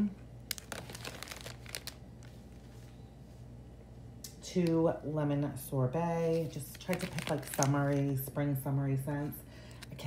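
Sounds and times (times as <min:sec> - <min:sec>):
plastic packaging crinkling: 0:00.4 - 0:02.8, 0:06.3 - 0:08.2.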